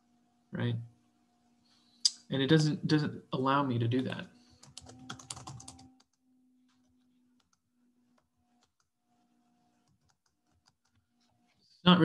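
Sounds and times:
person speaking: 2.1 - 4.3
computer keyboard clicks: 4.6 - 6.1, 9.8 - 11.0.

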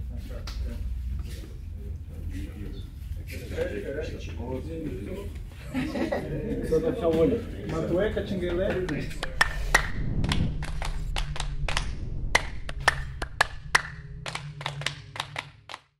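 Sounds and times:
steady low hum: 0.0 - 15.9.

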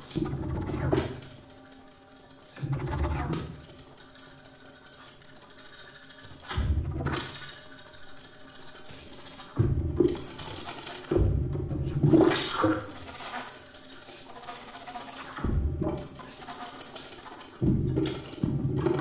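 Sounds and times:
experimental ensemble music: 5.6 - 13.2, 14.1 - 19.0.

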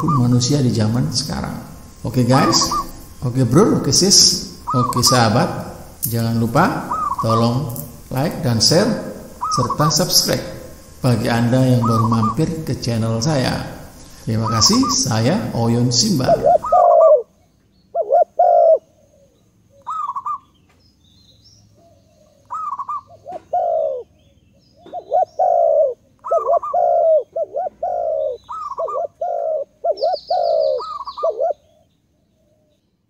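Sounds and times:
rapid high bird trill: 0.0 - 20.6, 22.3 - 31.8
bird calling in short notes: 2.4 - 3.0.

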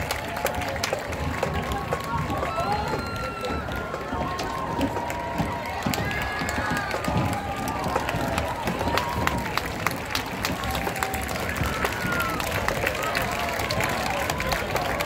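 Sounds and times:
crowd chatter: 0.0 - 15.0
scattered hand claps: 0.0 - 15.0.

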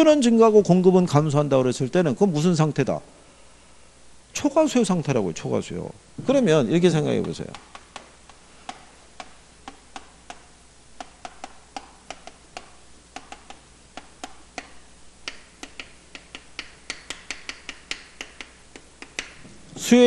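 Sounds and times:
chalk tapping on chalkboard: 7.2 - 19.4.

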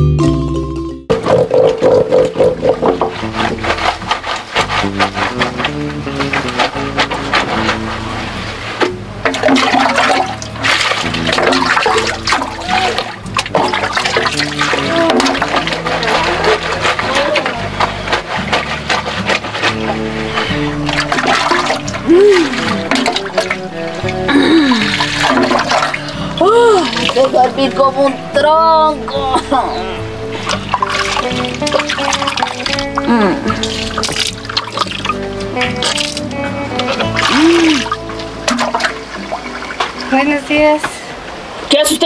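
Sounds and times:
background music with held notes: 0.0 - 41.6
water splashing in a basin: 1.1 - 28.1, 30.4 - 40.8
laundry scrubbed by hand: 2.5 - 28.1, 30.4 - 40.8.

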